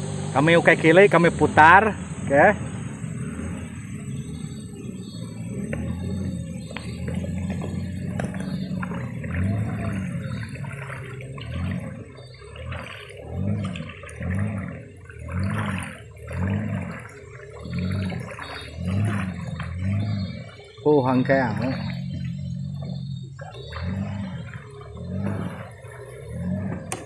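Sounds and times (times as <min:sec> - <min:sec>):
outboard engine running: 0:00.0 - 0:27.0
water splashing: 0:00.0 - 0:27.0.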